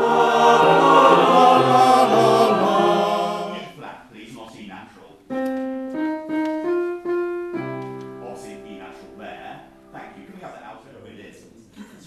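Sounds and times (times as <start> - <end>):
piano notes and chord: 0.0 - 3.7, 5.3 - 10.4.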